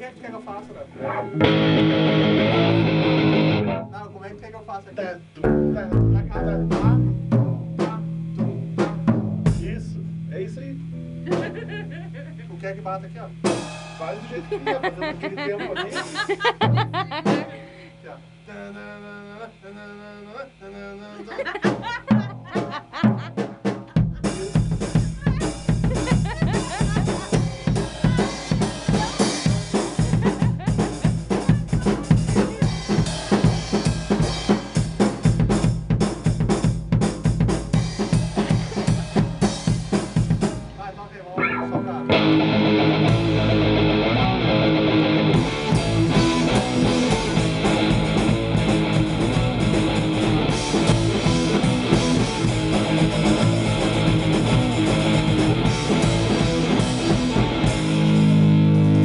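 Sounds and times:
hardcore punk band playing: 0.9s - 4.5s, 5.2s - 12.5s, 13.3s - 18.5s, 21.4s - 59.0s
drum kit playing fast beat: 1.3s - 4.3s, 5.0s - 18.4s, 21.4s - 59.0s.

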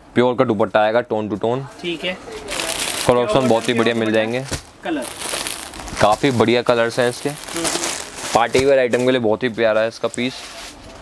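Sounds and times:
plastic packaging crinkling: 2.4s - 10.5s.

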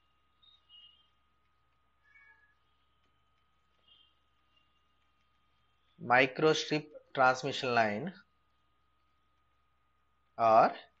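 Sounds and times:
faint high-pitched squeaks: 0.0s - 6.0s.

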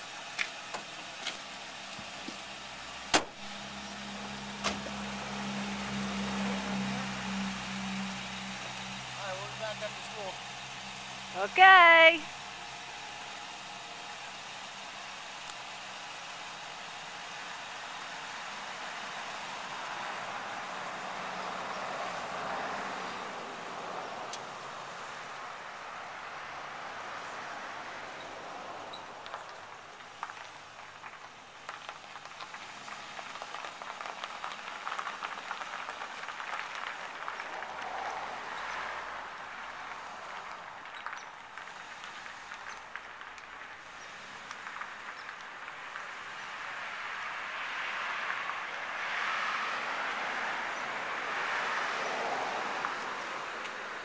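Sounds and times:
car engine pulling away: 0.0s - 11.4s, 12.3s - 54.0s.

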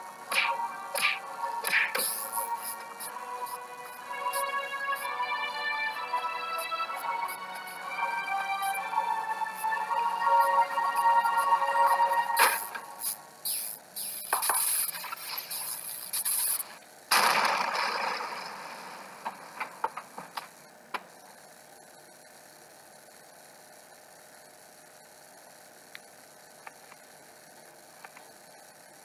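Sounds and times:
electronic glitch noises: 0.0s - 21.3s
faint hum: 0.0s - 29.0s
loud noisy burst: 12.4s - 19.7s.

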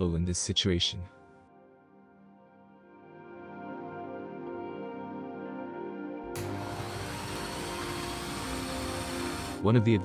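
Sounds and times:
background music: 0.0s - 10.0s
electric drill running: 6.4s - 9.6s.

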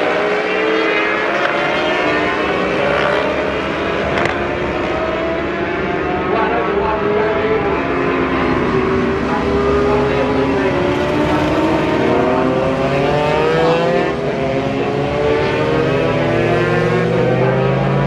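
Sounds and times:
racing motorcycles revving: 0.0s - 18.0s.

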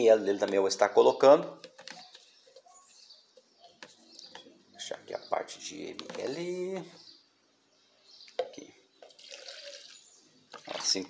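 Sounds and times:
liquid being poured: 9.0s - 11.0s.

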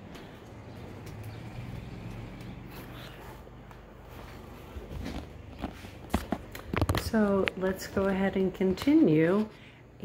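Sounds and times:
footsteps on plank floor: 0.0s - 8.2s.

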